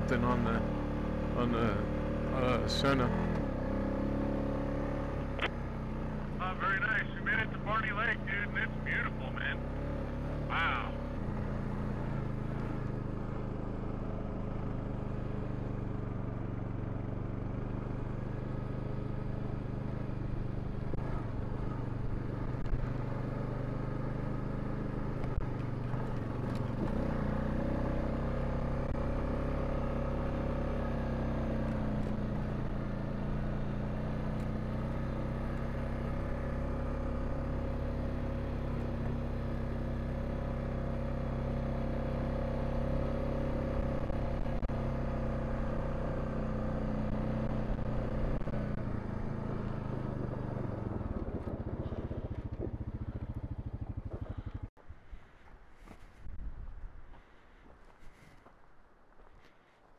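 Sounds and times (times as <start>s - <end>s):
quad bike engine running: 0.0s - 54.7s.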